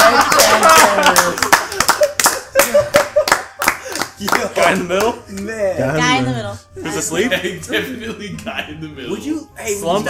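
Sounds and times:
group clapping hands: 0:00.0 - 0:05.5.

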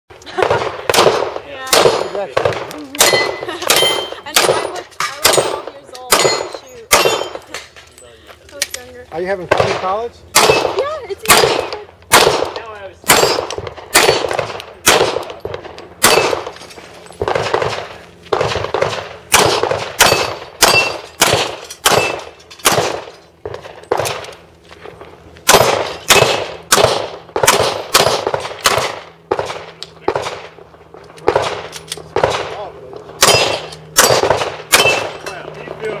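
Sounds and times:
handgun shots: 0:00.9 - 0:07.4, 0:09.5 - 0:15.4, 0:16.0 - 0:16.5, 0:17.2 - 0:23.1, 0:25.4 - 0:30.5, 0:33.2 - 0:35.2
ring of hit steel targets: 0:03.0 - 0:07.4, 0:13.1 - 0:14.2, 0:16.0 - 0:16.5, 0:19.4 - 0:22.8, 0:33.2 - 0:35.4.

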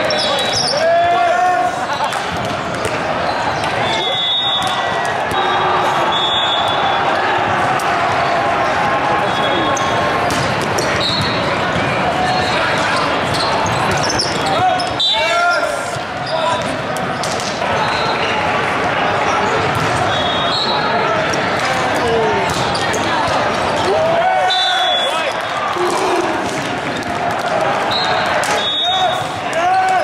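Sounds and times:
din of many voices: 0:00.0 - 0:30.0
volleyballs hit and bouncing: 0:01.8 - 0:15.0, 0:15.9 - 0:17.8, 0:19.4 - 0:24.4, 0:25.2 - 0:30.0.

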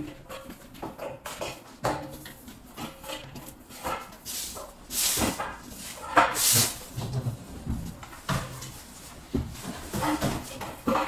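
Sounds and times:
broom sweeping hard floor: 0:02.4 - 0:11.0.

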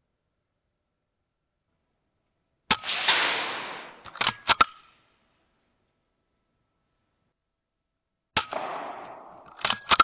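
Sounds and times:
air rifle shot: 0:02.7 - 0:04.4, 0:08.4 - 0:10.0
sharp mechanical clacks: 0:09.4 - 0:10.0.

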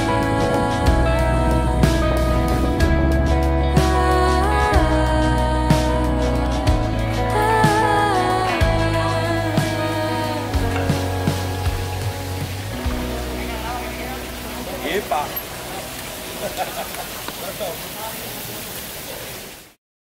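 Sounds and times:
background song: 0:00.0 - 0:16.8
people's voices: 0:12.2 - 0:19.4.

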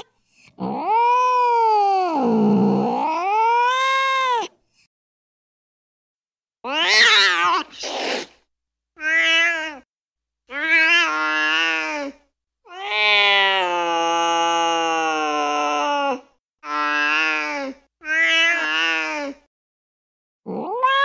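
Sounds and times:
recorded cat yowls and meows: 0:00.6 - 0:04.5, 0:06.6 - 0:08.3, 0:09.0 - 0:09.9, 0:10.5 - 0:19.5, 0:20.5 - 0:21.0.

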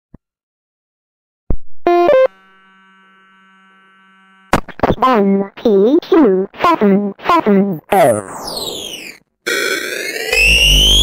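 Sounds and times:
faint electronic buzz: 0:01.9 - 0:04.9
glitchy electronic tones: 0:07.9 - 0:11.0.

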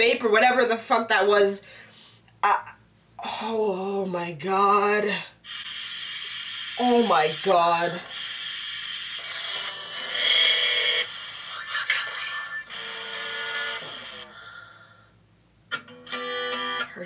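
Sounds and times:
television static hiss: 0:04.3 - 0:14.4
acoustic guitar strumming: 0:15.7 - 0:17.0.

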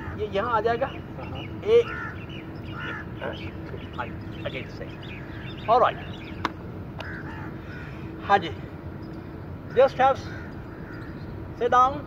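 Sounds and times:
crow-like bird calls: 0:00.0 - 0:08.4, 0:09.5 - 0:11.6.

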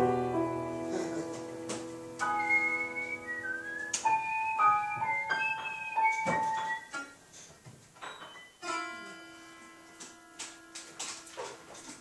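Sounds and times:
piano chord ringing: 0:00.0 - 0:07.2
high whistle-like melody: 0:02.2 - 0:07.2.

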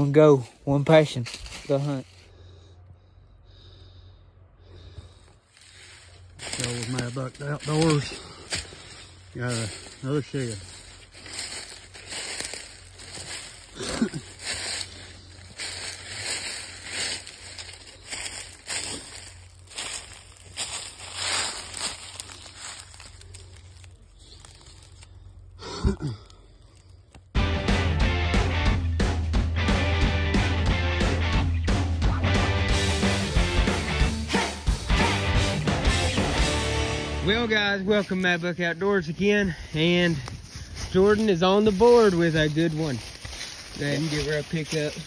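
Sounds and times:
footsteps crunching through dry leaves: 0:00.0 - 0:02.7, 0:04.6 - 0:27.4, 0:32.7 - 0:45.0.

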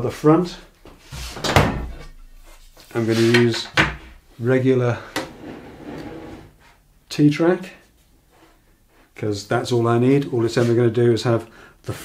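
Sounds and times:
metal scraping across bench: 0:05.2 - 0:06.6.

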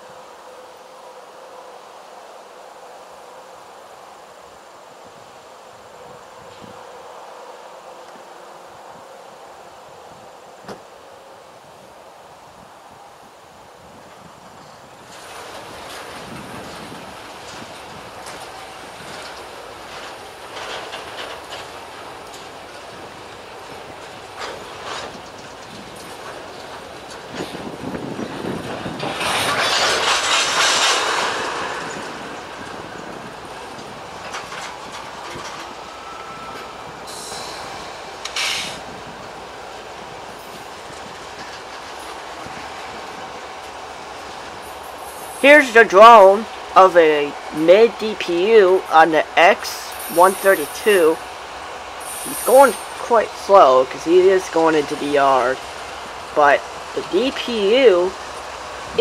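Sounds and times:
diesel locomotive engine: 0:00.0 - 0:59.0
freight train wheel noise: 0:00.0 - 0:59.0
clicks over rail joints: 0:28.4 - 0:35.7.

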